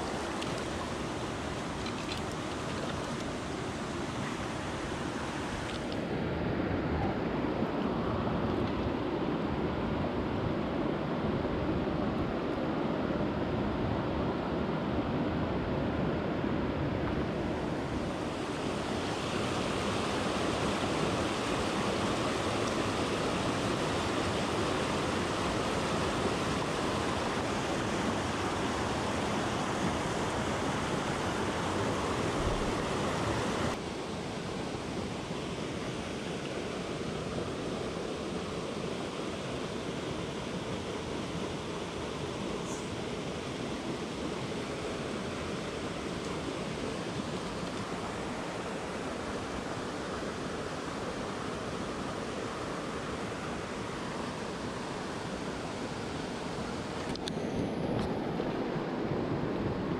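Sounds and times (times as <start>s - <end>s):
stream rushing over rocks: 0.0s - 6.6s, 17.1s - 59.9s.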